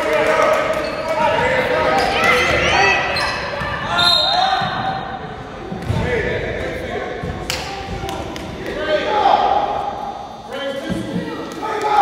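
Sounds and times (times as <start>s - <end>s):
voices of players and spectators: 0.0s - 12.0s.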